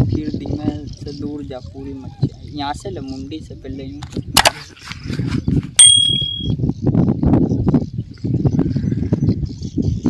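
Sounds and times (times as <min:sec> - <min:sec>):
bell-like notification ding: 0:05.8 - 0:06.5.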